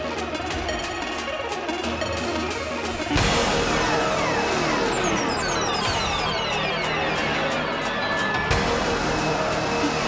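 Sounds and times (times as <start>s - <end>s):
electronic dance music: 0.0s - 10.0s
synthesizer sweep gliding downward: 2.8s - 10.0s.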